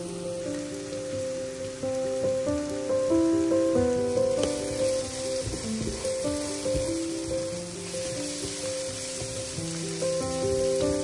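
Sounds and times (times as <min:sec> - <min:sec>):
slow background music: 0:00.0 - 0:11.0
vegetables sizzling in a pan: 0:00.0 - 0:11.0.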